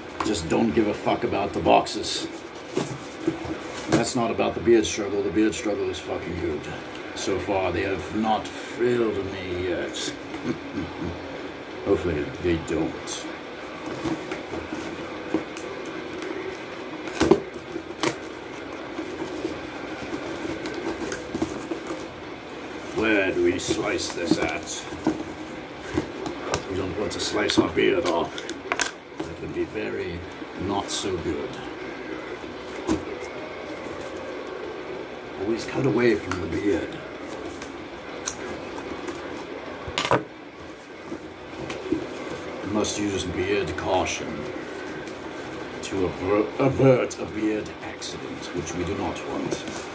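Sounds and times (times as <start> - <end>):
cardboard rubbing and scraping: 1.7 - 4.3, 13.7 - 28.3.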